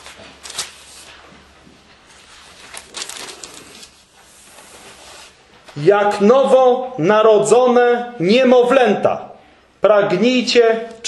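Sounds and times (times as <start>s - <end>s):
paper pages rustling: 0.0s - 5.8s.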